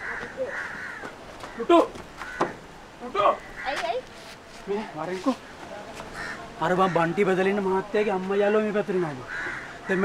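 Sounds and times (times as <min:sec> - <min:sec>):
crows cawing: 0:00.0 - 0:04.1, 0:05.4 - 0:07.8, 0:09.0 - 0:10.0.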